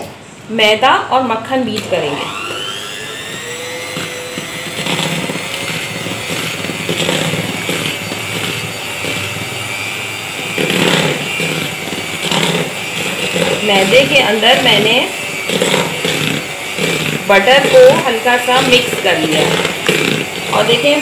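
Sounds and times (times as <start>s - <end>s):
electric hand mixer running: 1.7s - 21.0s.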